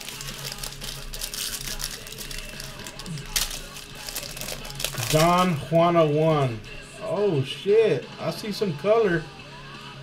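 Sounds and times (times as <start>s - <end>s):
foil wrapper crinkling: 0.0s - 5.6s.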